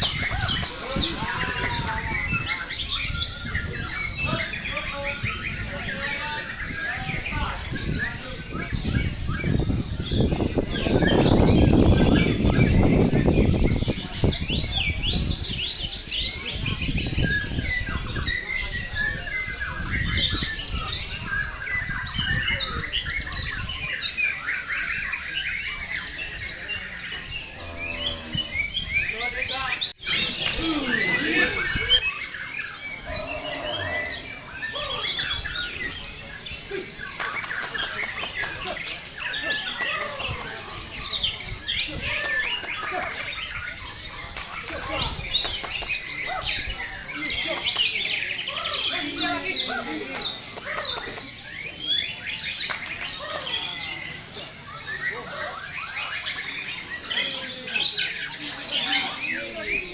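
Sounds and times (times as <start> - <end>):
crowd voices rumble: 0.0 - 59.9
songbirds whistling and chirping: 0.0 - 59.9.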